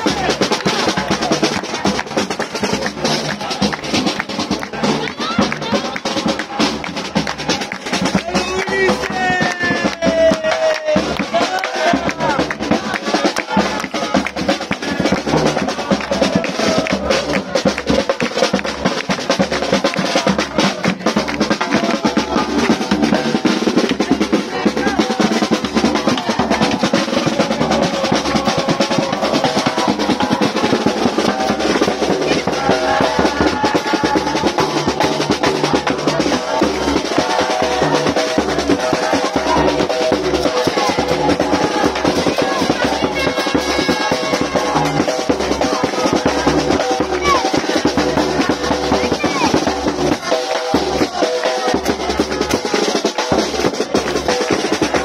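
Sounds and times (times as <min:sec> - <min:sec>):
bass drum and snare drum beat: 0:00.0 - 0:55.0.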